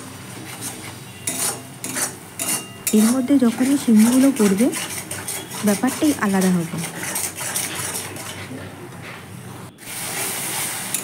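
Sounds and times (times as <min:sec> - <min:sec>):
spoon scraping metal pan: 0:00.4 - 0:08.5.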